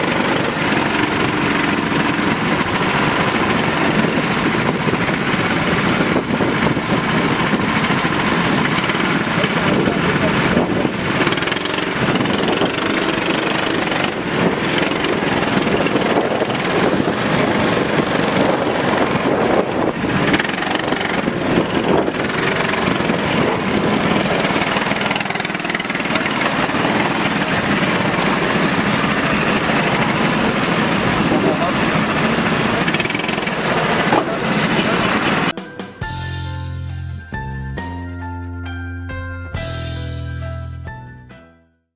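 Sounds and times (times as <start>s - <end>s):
car engines running: 0.0s - 36.2s
crowd of voices: 24.5s - 35.6s.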